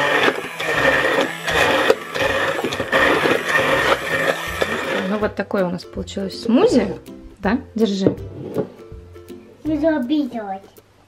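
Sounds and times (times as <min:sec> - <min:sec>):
fruit churning: 0:00.0 - 0:05.2
stick blender motor whine: 0:00.0 - 0:05.2.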